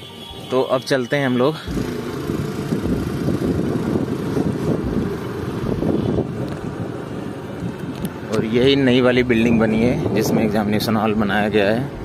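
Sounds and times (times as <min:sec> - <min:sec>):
wind buffeting microphone: 0:01.7 - 0:12.0.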